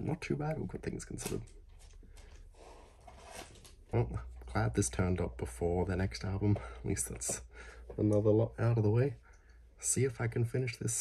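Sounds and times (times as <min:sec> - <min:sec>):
person breathing softly: 0:06.5 - 0:08.0.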